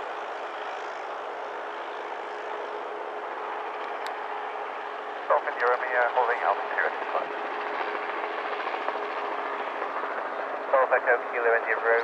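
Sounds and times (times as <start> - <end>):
propeller aircraft engine drone: 0.0 - 12.0.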